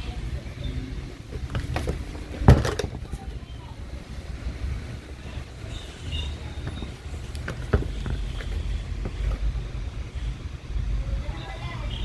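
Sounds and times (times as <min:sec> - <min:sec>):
plastic parts clicking and knocking: 0:01.4 - 0:03.2.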